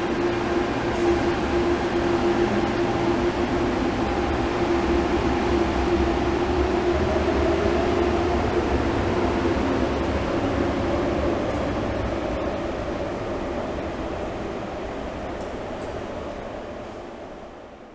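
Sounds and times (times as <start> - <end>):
train whine and rumble: 0.0 - 17.9.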